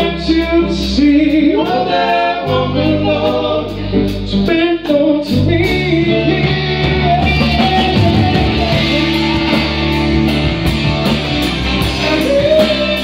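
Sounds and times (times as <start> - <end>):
person singing: 0.0 - 10.1, 11.8 - 13.0
bass notes: 0.0 - 13.0
electric guitars: 0.0 - 13.0.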